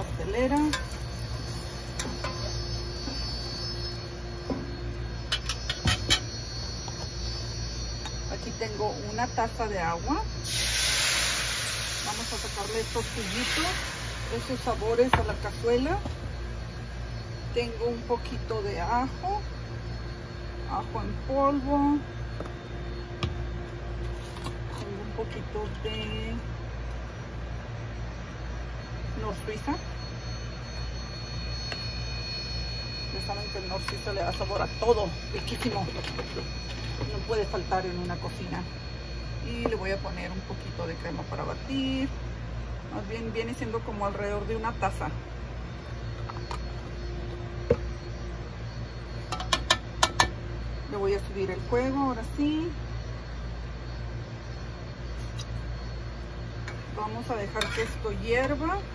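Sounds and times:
steady low hum: 0.0s - 58.9s.

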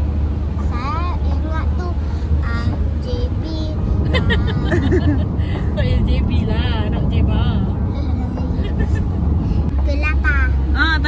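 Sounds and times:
car rumbling inside cabin: 0.0s - 11.0s.

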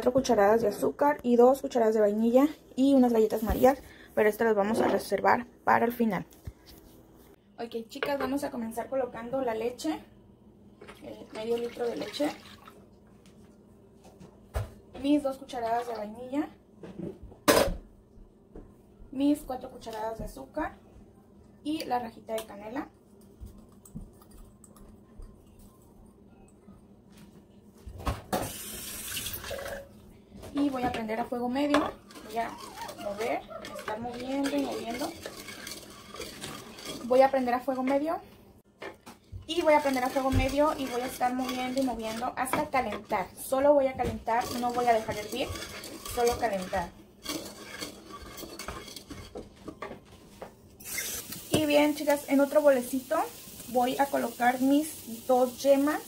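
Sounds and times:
spoon scraping a saucepan: 31.5s - 38.1s, 39.5s - 50.0s, 50.8s - 52.1s.

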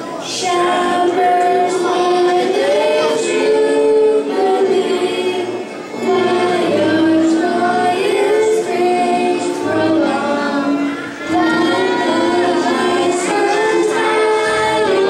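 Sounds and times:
children singing: 0.0s - 15.0s
keyboard: 0.0s - 15.0s
violin: 0.0s - 15.0s
cello: 0.4s - 15.0s.

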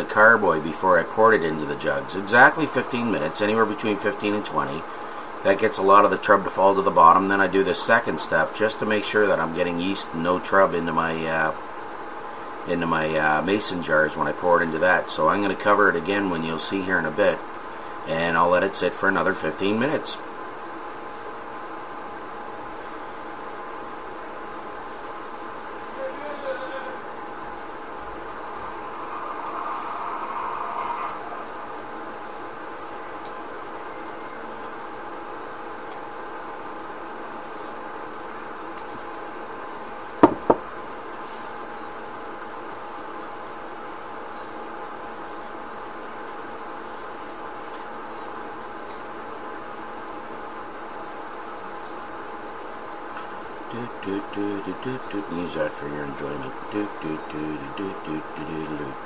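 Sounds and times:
background hum of tones: 0.0s - 59.0s
hiss: 28.5s - 31.5s
sharp knocks: 40.2s - 40.6s.

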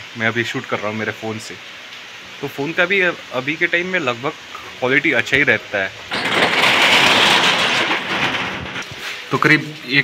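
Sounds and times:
roller shutter rattling: 6.0s - 9.3s.

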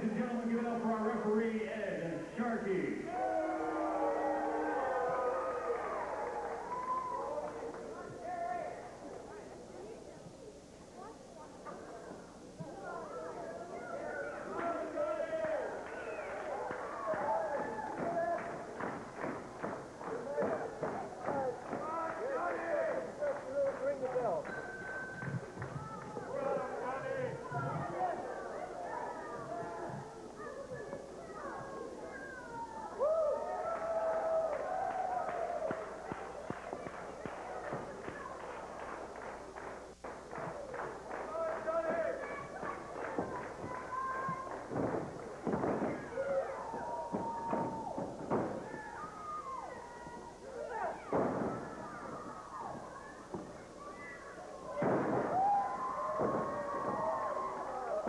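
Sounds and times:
crowd shouting and yelling: 0.0s - 9.0s, 12.6s - 38.8s, 40.2s - 58.0s
rhythmic clapping: 14.5s - 27.0s, 33.8s - 46.2s
wrestlers thudding and slapping: 17.1s - 22.6s, 41.8s - 48.9s, 51.1s - 53.6s, 54.7s - 58.0s.

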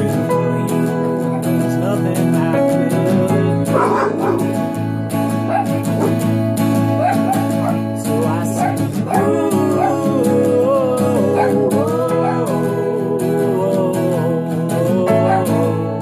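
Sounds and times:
person singing: 0.0s - 4.7s, 7.1s - 16.0s
acoustic guitar strumming: 0.0s - 16.0s
yelping vocal sound: 3.7s - 4.6s, 7.0s - 7.8s, 8.6s - 10.2s, 11.1s - 12.5s.

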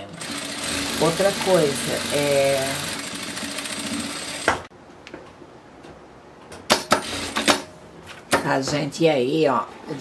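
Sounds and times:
sewing machine stitching: 0.1s - 4.5s.

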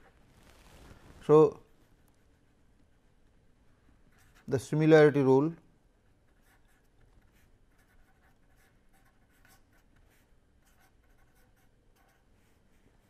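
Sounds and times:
pen scratching on paper: 6.3s - 12.8s.

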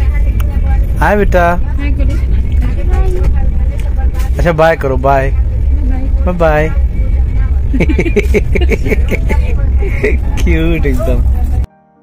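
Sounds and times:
train rumbling: 0.0s - 11.7s.

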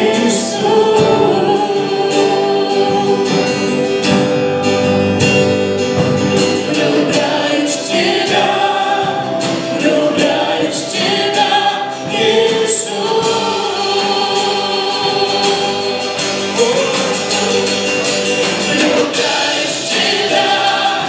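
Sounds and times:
woman singing lead: 0.0s - 5.2s, 6.6s - 21.0s
bass: 0.0s - 21.0s
drum kit beat: 0.0s - 21.0s
keyboard: 0.0s - 21.0s
strummed acoustic guitar: 0.0s - 21.0s
voices singing harmony: 0.0s - 21.0s.

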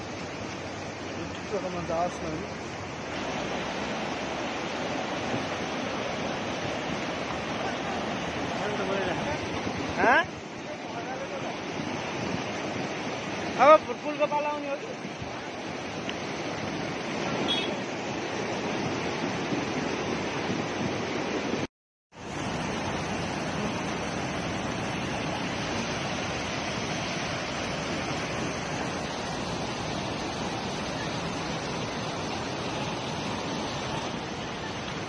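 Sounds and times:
floodwater rushing: 0.0s - 35.0s.

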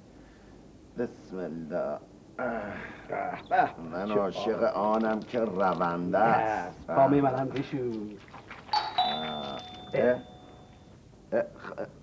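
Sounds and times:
two-note doorbell chime: 8.8s - 11.0s.

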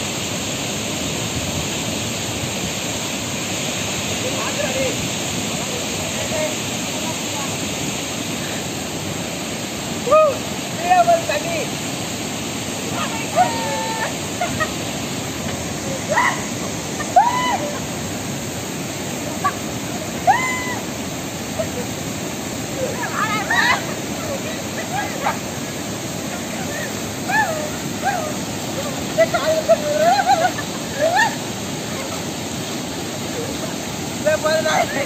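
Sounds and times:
rocky stream rushing: 0.0s - 35.0s
water splashing: 1.0s - 35.0s
people shouting and whooping: 10.0s - 10.5s, 13.0s - 14.8s, 16.0s - 18.0s, 19.4s - 20.9s, 22.7s - 25.6s, 26.3s - 32.2s.

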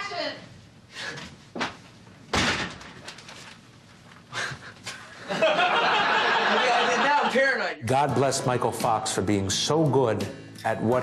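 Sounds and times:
door shutting with a thud: 2.3s - 3.0s.

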